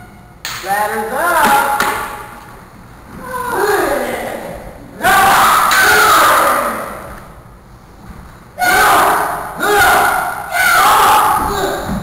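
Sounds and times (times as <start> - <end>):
person yelling: 8.6 - 11.9.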